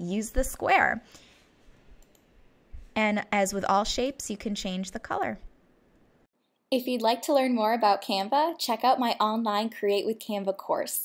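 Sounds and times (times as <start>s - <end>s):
computer mouse clicks: 1.9s - 2.3s.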